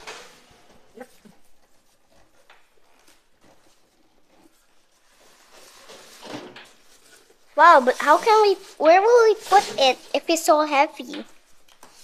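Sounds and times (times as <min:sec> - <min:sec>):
plastic wrapping rustling: 0:01.5 - 0:12.0.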